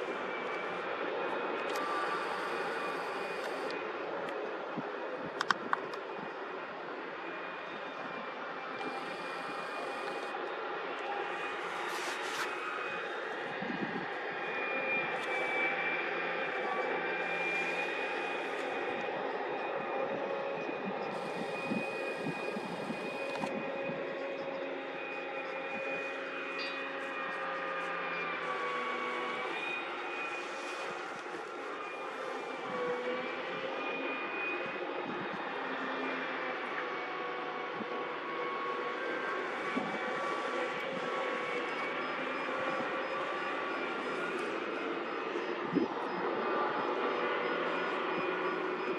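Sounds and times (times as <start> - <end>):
heavy machinery engines droning: 0.0 - 48.9.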